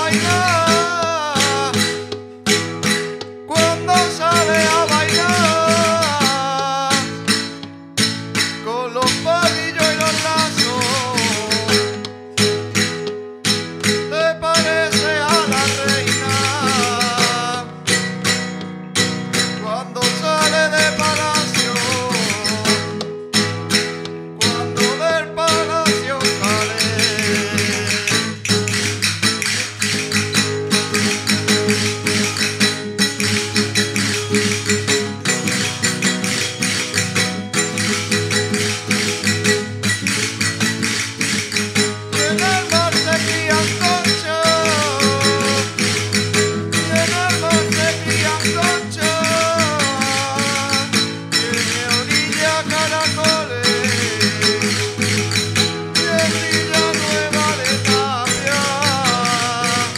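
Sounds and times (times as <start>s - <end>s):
people singing: 0.0s - 1.7s, 3.6s - 6.5s, 42.2s - 45.9s, 56.0s - 59.9s
acoustic guitar strumming: 0.0s - 59.9s
frame drums and tambourines: 25.6s - 52.3s.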